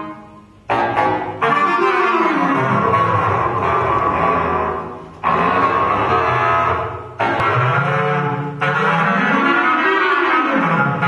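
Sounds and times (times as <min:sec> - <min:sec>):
bass clarinet long held note: 0:00.0 - 0:11.0.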